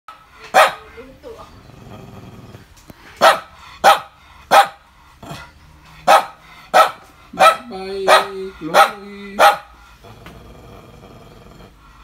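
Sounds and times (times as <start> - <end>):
dog barking: 0.1 - 0.9, 3.2 - 4.8, 6.0 - 9.8
dog growling: 1.1 - 3.0, 5.0 - 5.7, 7.4 - 12.0.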